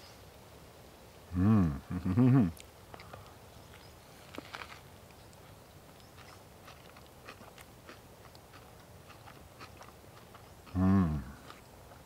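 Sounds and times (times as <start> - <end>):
man chewing food: 2.6 - 12.0.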